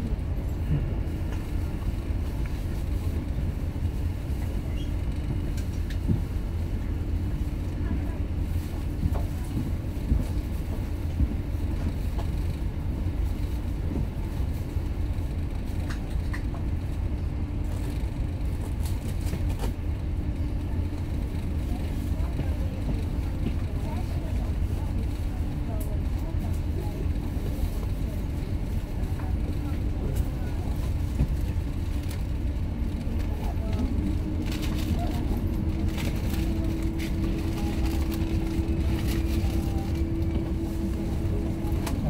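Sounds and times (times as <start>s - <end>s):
ship engines droning: 26.7s - 42.0s
steady hum: 31.1s - 42.0s.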